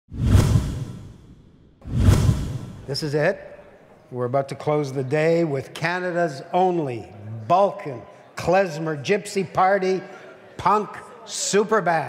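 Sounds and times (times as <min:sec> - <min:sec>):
whoosh sound effects: 0:00.1 - 0:03.0.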